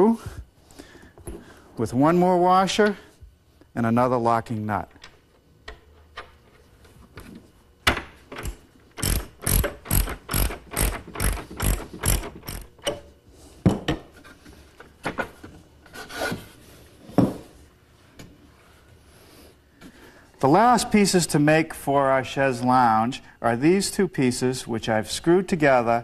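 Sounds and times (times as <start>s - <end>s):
ratchet wrench clicking: 9.0s - 12.7s.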